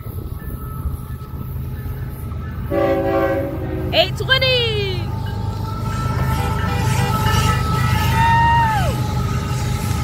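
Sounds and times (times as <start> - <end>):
diesel locomotive rumble: 0.0 - 10.0
train air horn: 2.7 - 4.1, 5.8 - 10.0.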